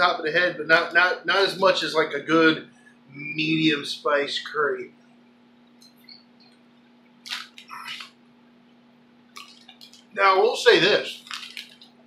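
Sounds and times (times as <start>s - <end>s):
steady low hum: 0.0s - 12.0s
lip smacks: 9.3s - 10.1s.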